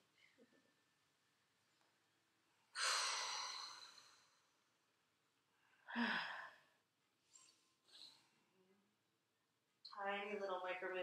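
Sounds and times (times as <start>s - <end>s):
person sighing: 5.9s - 6.6s.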